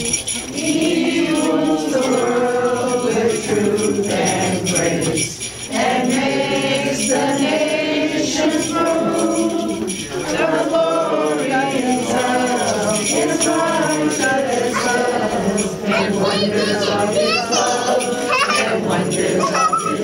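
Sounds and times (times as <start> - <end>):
group singing a carol: 0.0 - 20.0.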